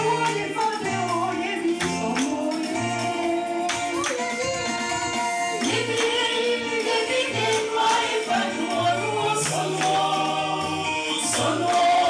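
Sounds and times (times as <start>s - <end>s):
choir singing a hymn: 0.0s - 3.6s, 5.6s - 12.0s.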